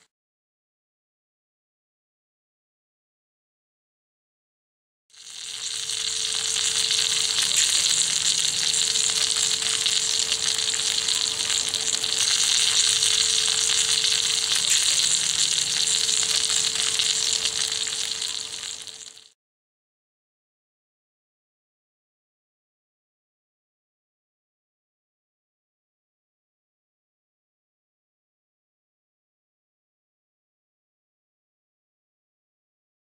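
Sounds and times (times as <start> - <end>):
sausages sizzling in a pan: 5.1 - 19.4.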